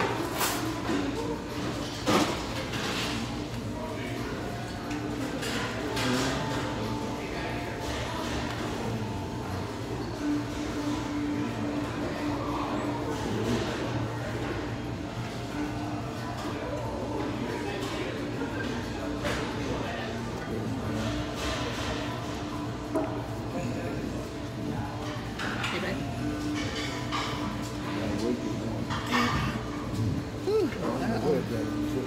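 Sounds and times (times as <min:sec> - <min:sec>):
murmur of voices: 0:00.0 - 0:32.0.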